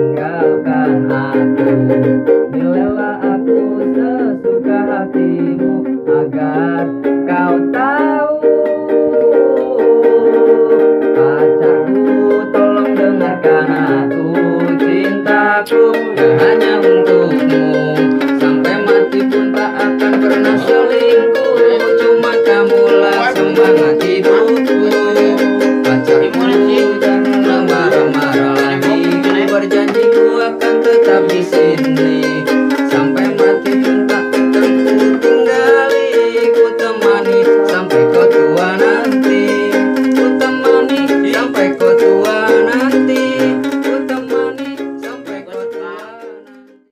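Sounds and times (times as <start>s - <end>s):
ukulele strumming: 0.0s - 46.9s.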